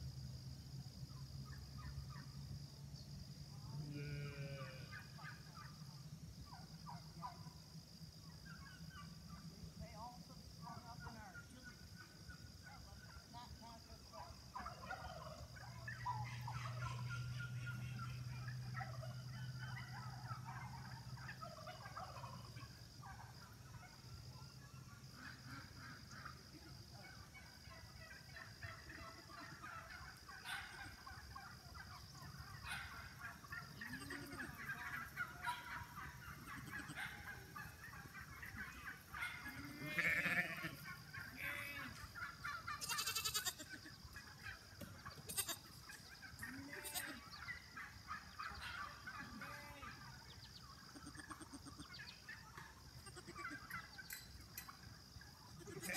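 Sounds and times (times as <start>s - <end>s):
farm animals calling: 3.7s - 9.9s, 10.5s - 55.9s.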